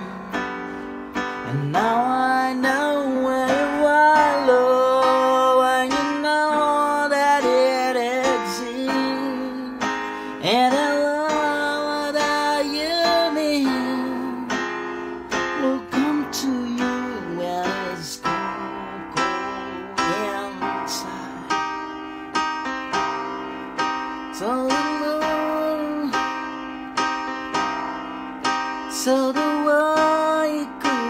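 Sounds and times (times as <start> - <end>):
electronic keyboard chords: 0.0 - 31.0.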